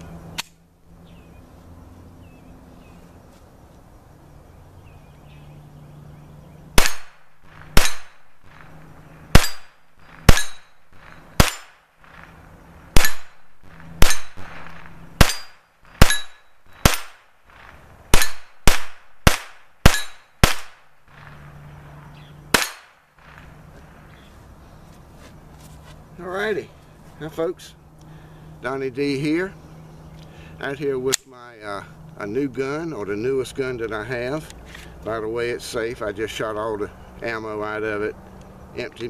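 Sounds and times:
pistol shots: 6.8 - 21.5, 22.5 - 23.5
metallic ring of steel targets: 9.3 - 12.2, 13.0 - 17.2, 18.2 - 18.5, 19.8 - 20.4.

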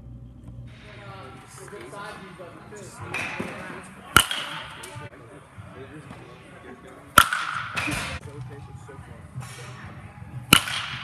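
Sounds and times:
baseball bat cracking ball: 3.1 - 5.0, 7.1 - 8.2, 10.5 - 11.0.

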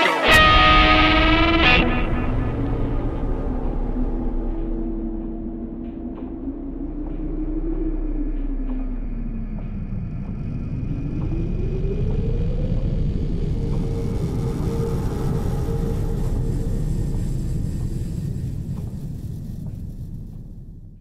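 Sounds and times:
dense low rumble: 0.3 - 21.0.

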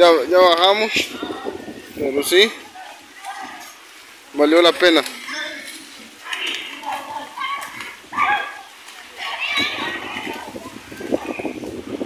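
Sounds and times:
children shouting in a pool: 0.8 - 12.0.

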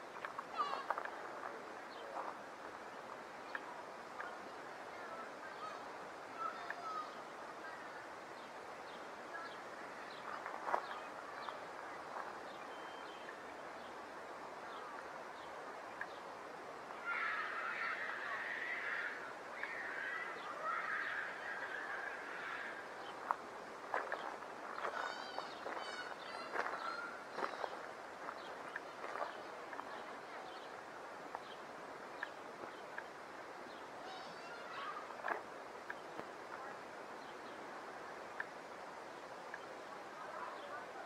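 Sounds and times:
steady background hiss: 0.0 - 41.0
birds calling: 1.9 - 38.6.

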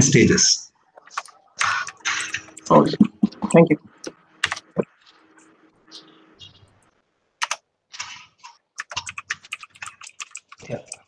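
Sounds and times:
keyboard typing clicks: 1.0 - 5.5, 7.4 - 11.0.

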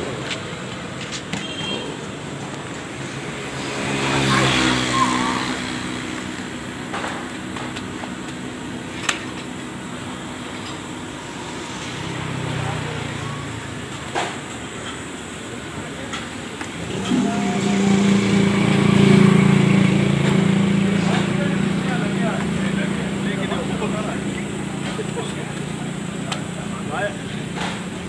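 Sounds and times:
vehicle engine passing: 1.9 - 28.0.

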